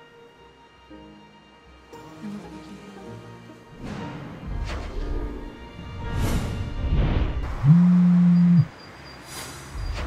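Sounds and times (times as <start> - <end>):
phone vibrating buzz: 7.6 - 8.7.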